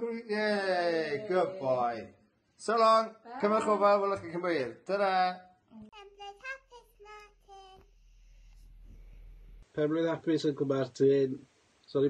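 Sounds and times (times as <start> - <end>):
child singing quietly: 5.8 - 7.9.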